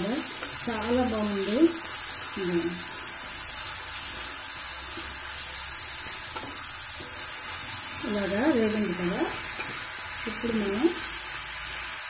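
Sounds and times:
chillies sizzling in hot oil: 0.0s - 12.0s
spatula stirring: 1.7s - 10.2s.

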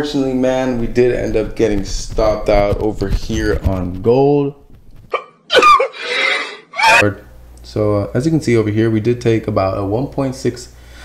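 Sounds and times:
breathy sigh: 5.9s - 7.0s.

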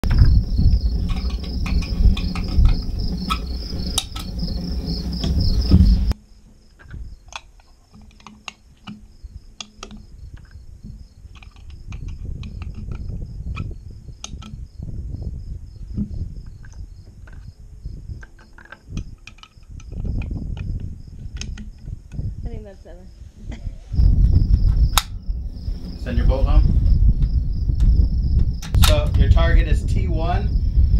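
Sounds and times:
wind buffeting microphone: 0.0s - 6.2s, 6.8s - 7.4s, 8.9s - 30.9s
crickets chirping: 0.0s - 30.9s.

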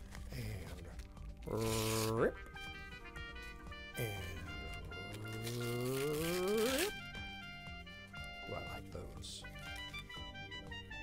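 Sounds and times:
background music: 0.0s - 11.0s
tissue paper tearing: 1.4s - 2.3s, 4.8s - 7.0s.

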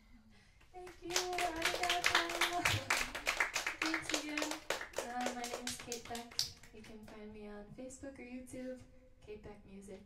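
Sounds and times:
audience applause: 1.1s - 6.2s.

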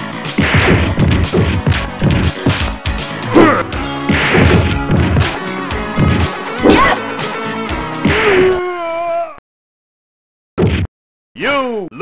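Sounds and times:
music: 0.0s - 8.7s
hit and smash sound effects: 0.4s - 2.7s, 4.0s - 5.4s.

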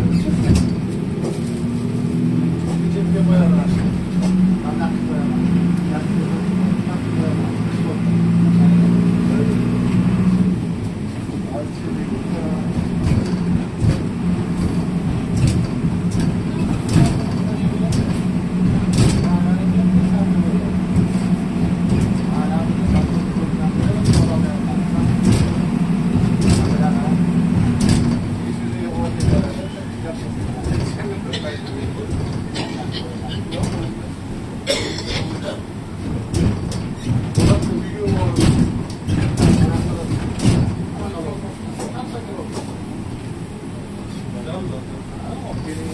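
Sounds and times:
bus engine and road rumble: 0.0s - 45.9s
rattles and knocks of bus body: 0.0s - 45.9s.

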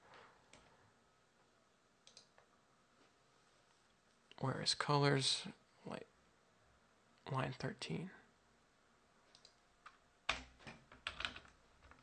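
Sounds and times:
computer mouse clicks: 2.0s - 2.5s, 9.3s - 11.5s.

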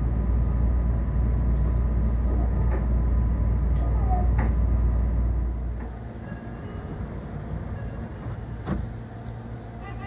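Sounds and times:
train equipment humming: 0.0s - 10.0s.

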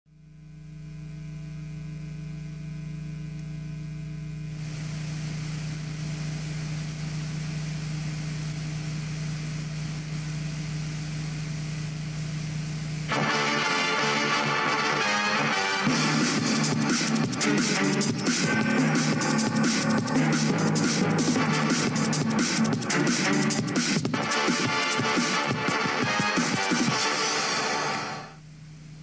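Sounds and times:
electrical hum with hiss: 0.1s - 29.0s
loud theme music: 13.1s - 28.4s.

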